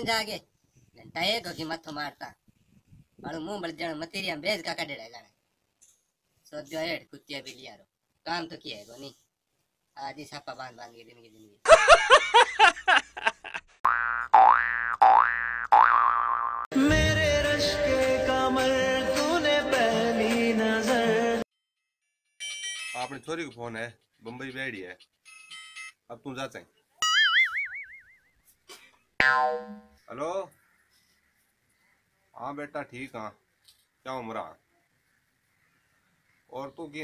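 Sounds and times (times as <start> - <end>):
cartoon boing sound effect: 13.9 - 16.7, 27.0 - 28.2, 29.2 - 29.9
music: 16.7 - 21.4
springy boings: 29.2 - 30.0.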